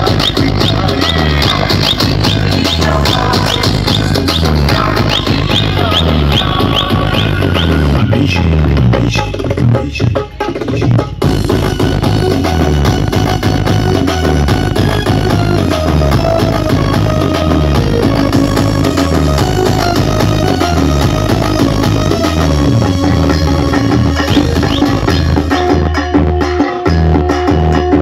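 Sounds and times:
loud dance music with heavy bass: 0.0s - 28.0s.

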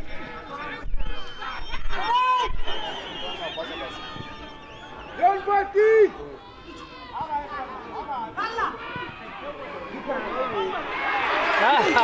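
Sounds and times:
men talking and calling out: 0.0s - 12.0s.

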